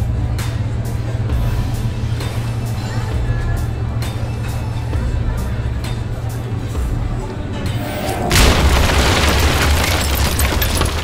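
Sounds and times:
cinematic boom with deep rumble: 0:07.6 - 0:10.2.

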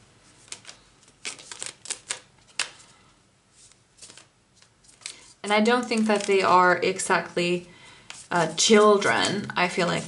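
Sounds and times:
cards shuffling: 0:00.3 - 0:02.9, 0:03.6 - 0:06.8, 0:08.1 - 0:10.0.

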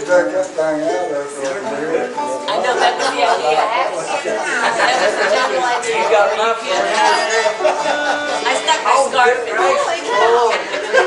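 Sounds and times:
people chatting: 0:00.0 - 0:11.0.

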